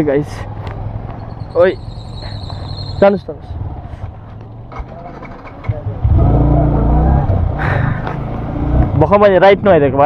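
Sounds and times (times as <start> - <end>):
motorcycle engine rumble: 0.0 - 10.0.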